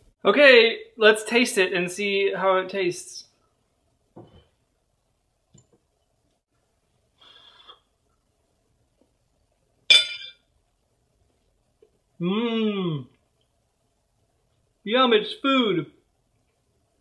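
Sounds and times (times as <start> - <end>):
metal utensil clinking on plate: 9.9 - 10.4.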